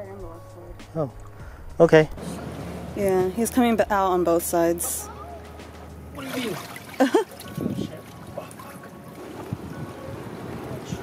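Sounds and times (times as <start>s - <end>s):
wind: 0.0s - 11.0s
ocean surf: 2.2s - 3.9s, 8.2s - 11.0s.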